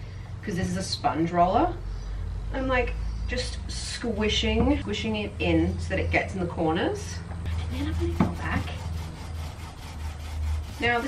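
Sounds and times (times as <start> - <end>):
paint roller squishing on wood: 7.5 - 11.0.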